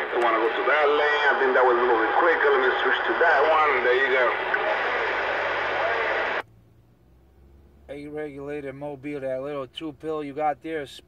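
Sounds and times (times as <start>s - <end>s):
faint voice over radio: 0.0s - 6.4s
radio static hiss: 0.0s - 6.4s.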